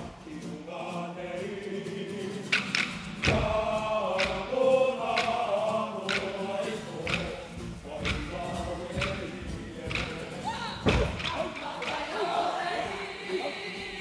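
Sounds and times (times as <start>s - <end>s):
group chanting in unison: 0.0s - 14.0s
sharp rhythmic thumps: 2.4s - 13.2s.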